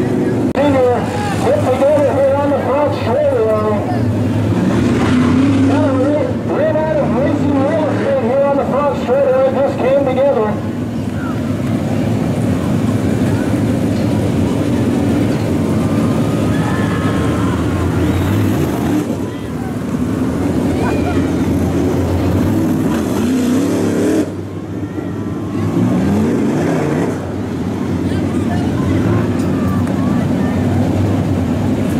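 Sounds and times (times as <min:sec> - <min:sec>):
faint crowd voices: 0:00.0 - 0:31.9
race car engines rumbling: 0:00.0 - 0:31.9
engine revving: 0:00.6 - 0:09.0, 0:12.5 - 0:24.6, 0:25.5 - 0:28.2.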